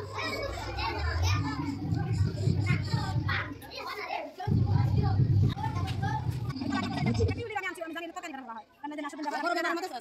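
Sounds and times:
children talking and calling out: 0.0s - 9.9s
low rumble: 0.4s - 3.6s, 4.5s - 7.5s.

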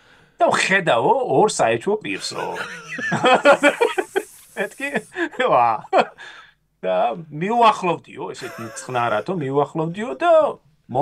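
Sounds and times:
men talking: 0.4s - 6.2s, 6.8s - 11.0s
men laughing: 2.1s - 6.2s, 8.4s - 9.5s.

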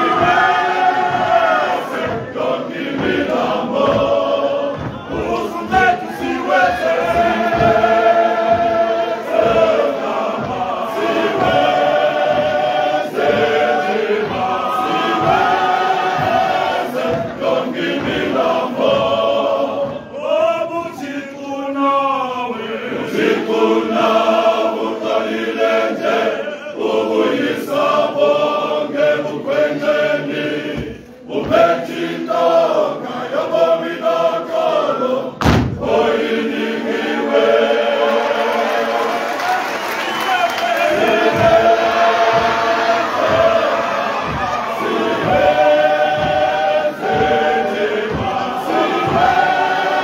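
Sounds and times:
men's choir singing in harmony: 0.0s - 50.0s.

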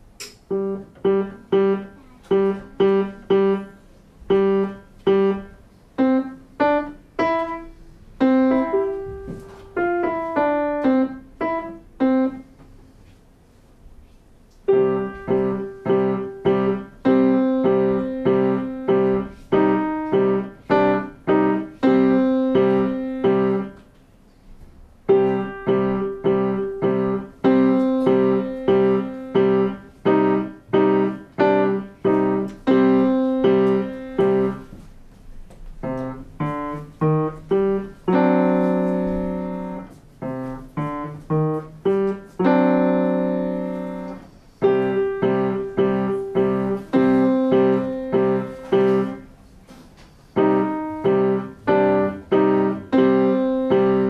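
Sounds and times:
piano notes: 0.0s - 54.0s
quick repeated piano chords: 0.5s - 12.5s, 14.6s - 23.8s, 25.0s - 34.7s, 35.8s - 49.4s, 50.4s - 54.0s.

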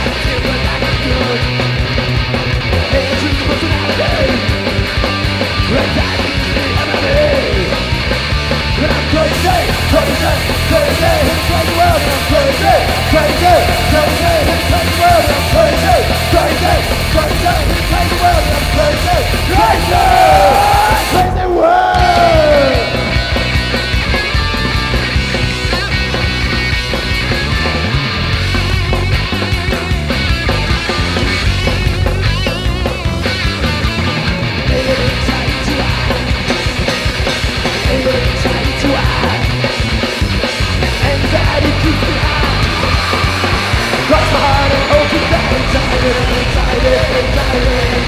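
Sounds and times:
drums beating: 0.0s - 48.0s
loud guitars: 0.0s - 48.0s
punk rock band playing live: 0.0s - 48.0s.

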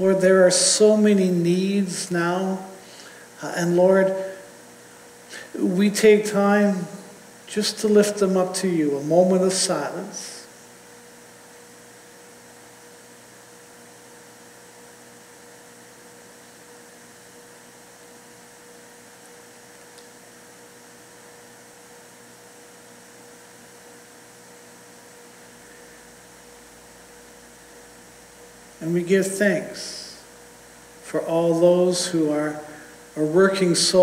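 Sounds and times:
electrical hum with hiss: 0.0s - 34.0s.

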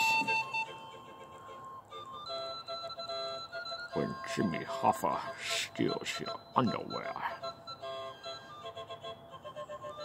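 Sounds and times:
simple melody of held notes: 0.0s - 10.0s.

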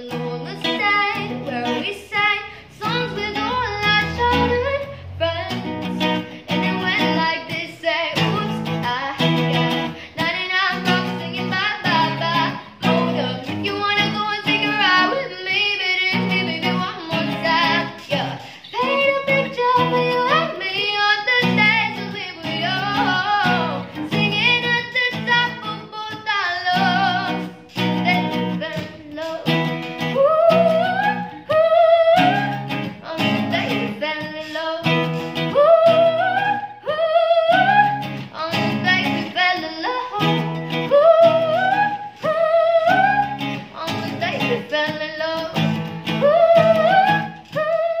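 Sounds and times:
strummed acoustic guitar: 0.0s - 48.0s
young woman singing: 0.0s - 48.0s.

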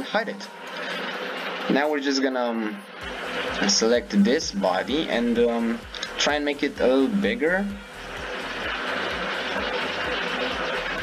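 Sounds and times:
faint low pulsing: 2.7s - 11.0s.

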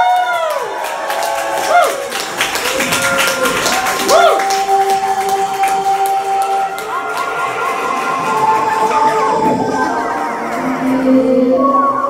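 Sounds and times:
long held synthesizer tone: 2.9s - 12.0s
synthesizer notes swooping: 3.3s - 12.0s.

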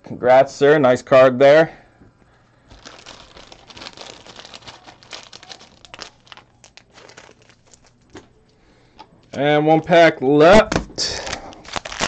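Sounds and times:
packaging crinkling: 2.6s - 8.4s, 11.2s - 12.0s.

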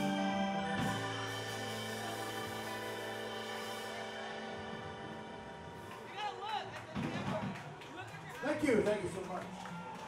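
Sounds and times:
sustained keyboard chord: 0.0s - 6.1s.

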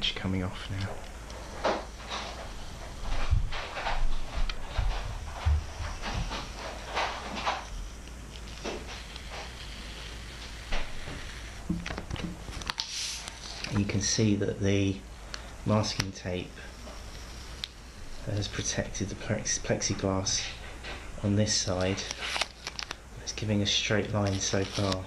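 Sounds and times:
masking tape peeling: 5.6s - 14.0s, 21.5s - 25.0s.

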